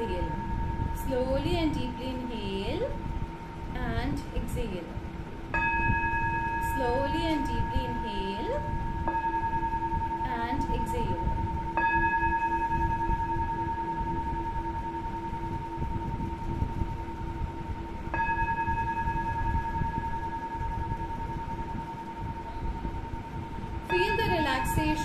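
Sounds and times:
singing bowl ringing: 0.0 - 3.7, 5.5 - 25.0
steady low drone: 0.0 - 25.0.

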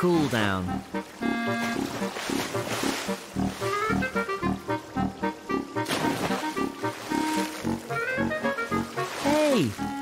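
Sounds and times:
instrumental music with beat: 0.7 - 9.2.

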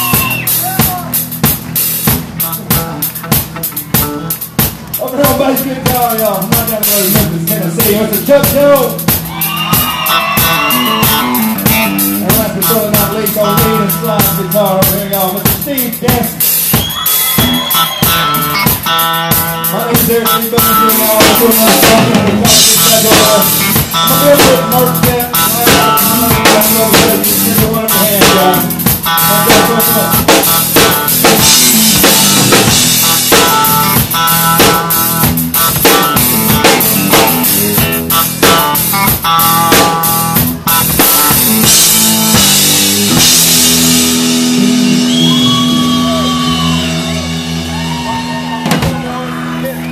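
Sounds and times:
drum kit with cymbal crashes: 0.0 - 49.2
live country band playing: 0.0 - 49.9.

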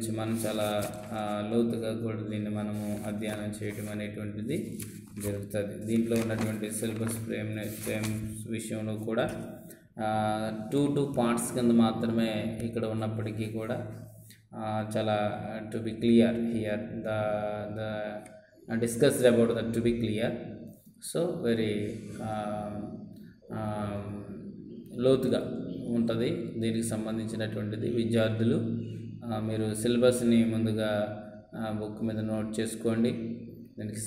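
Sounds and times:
man lecturing: 0.0 - 34.0.

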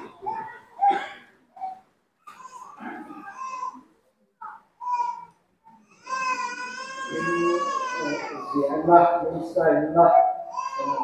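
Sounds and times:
baby crying: 1.6 - 9.2, 10.1 - 11.0.

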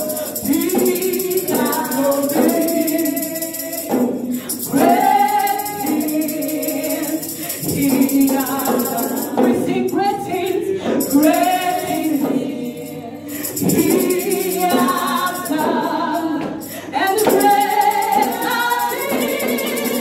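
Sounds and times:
jingling percussion beat: 0.0 - 20.0
woman singing gospel song: 0.0 - 20.0.

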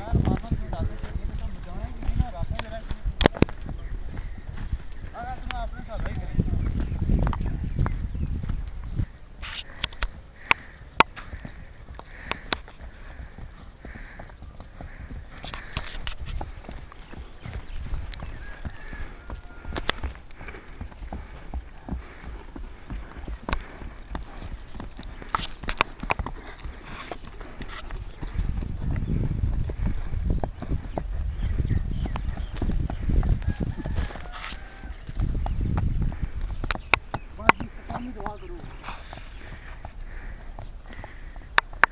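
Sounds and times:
horse hoofbeats on dirt: 0.0 - 41.9.

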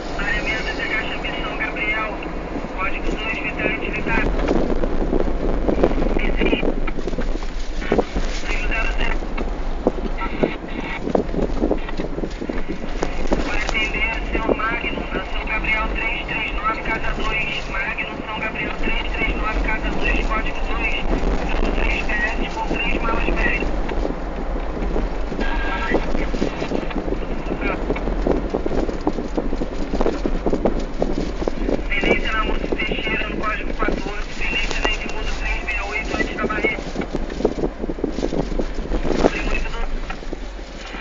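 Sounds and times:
indistinct background voices: 0.0 - 4.6, 7.8 - 23.9, 25.0 - 28.0, 31.6 - 37.0, 39.1 - 40.1
vehicle noise: 0.0 - 41.0
wind buffeting microphone: 0.0 - 41.0.

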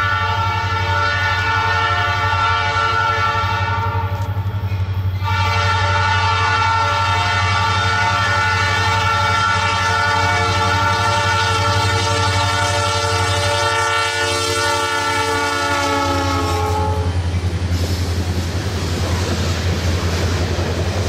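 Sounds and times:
locomotive air horn blast: 0.0 - 4.4, 5.1 - 17.2
low rumble of engines and wheels: 0.0 - 6.0, 7.0 - 21.0.

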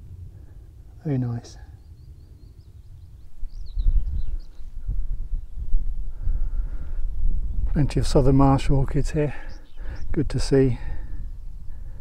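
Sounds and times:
faint birdsong chirps: 0.0 - 12.0
wind buffeting microphone: 1.7 - 12.0.

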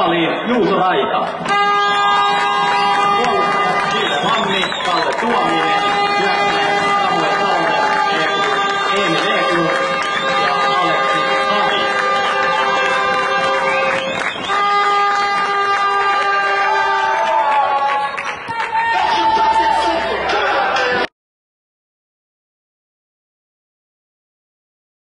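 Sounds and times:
music over public address: 0.0 - 21.1
voices of players and spectators: 0.0 - 21.1.

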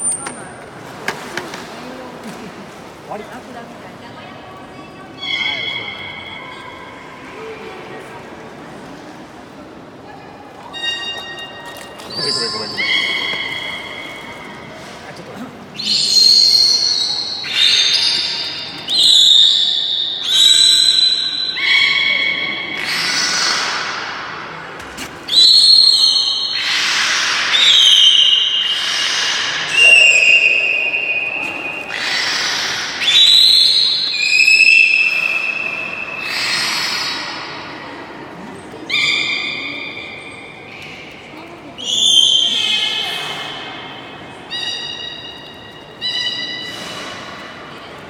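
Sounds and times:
beluga whale whistles and squeals: 5.2 - 7.0, 10.6 - 14.7, 15.8 - 24.1, 25.3 - 38.0, 38.8 - 40.8, 41.8 - 47.4.

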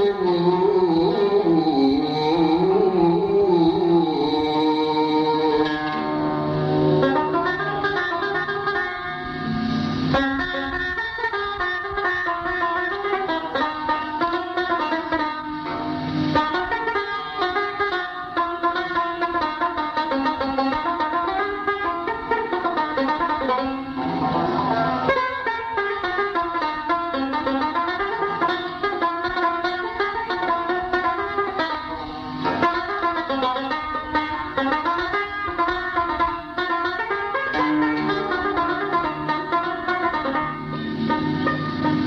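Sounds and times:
plucked string instruments: 0.0 - 42.0.

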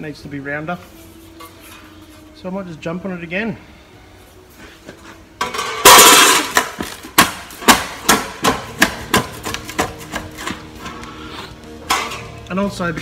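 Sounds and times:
sharp clanks of sheet metal: 5.4 - 10.6, 11.8 - 12.4.

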